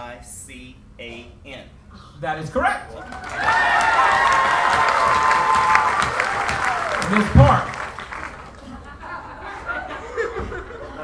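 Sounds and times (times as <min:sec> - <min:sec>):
man speaking: 0:07.0 - 0:07.8.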